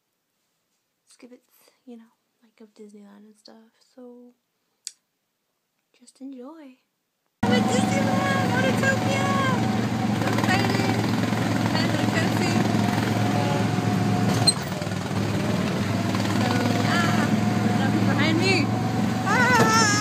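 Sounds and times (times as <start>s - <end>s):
ride vehicle engine running: 7.4s - 20.0s
voices talking: 7.4s - 20.0s
people laughing: 19.3s - 20.0s.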